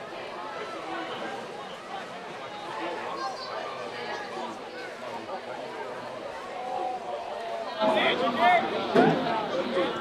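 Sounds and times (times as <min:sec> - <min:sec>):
indistinct chatter and calls: 0:00.0 - 0:10.0.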